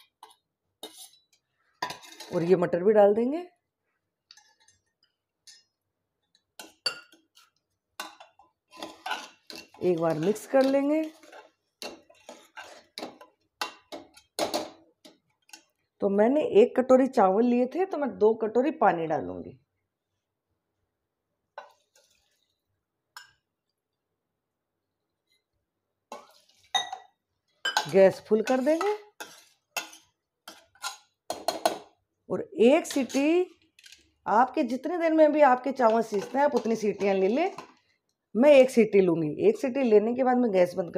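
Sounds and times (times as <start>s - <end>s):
metal ladle scraping a pot: 0.0s - 2.6s, 7.3s - 14.6s, 21.6s - 22.6s, 26.1s - 26.9s, 27.8s - 31.1s, 32.7s - 34.1s, 35.7s - 37.8s.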